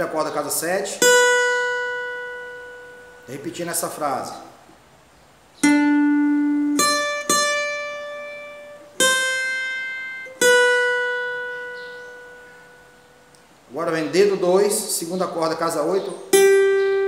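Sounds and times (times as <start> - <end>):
acoustic guitar picked notes: 0.0 - 17.0.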